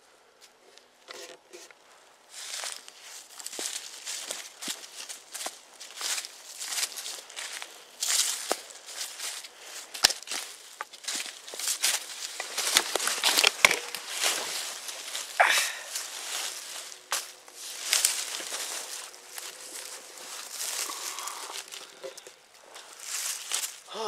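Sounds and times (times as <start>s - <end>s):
footsteps crunching dry leaves: 1.9s - 24.0s.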